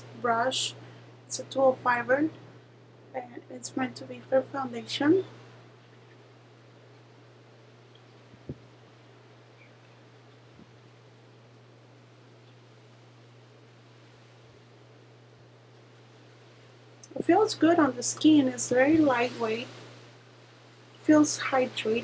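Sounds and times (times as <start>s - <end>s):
steady low hum: 0.0s - 22.0s.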